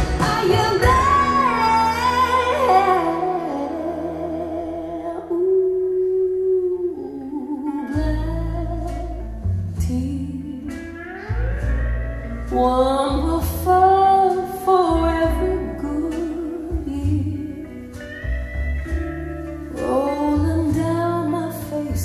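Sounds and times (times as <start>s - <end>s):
deep bass notes: 0.0s - 22.0s
gliding guitar line: 0.0s - 22.0s
slow song over loudspeakers: 0.0s - 22.0s.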